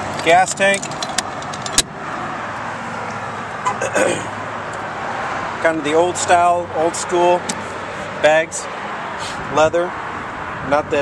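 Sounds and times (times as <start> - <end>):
vehicle noise: 0.0 - 11.0.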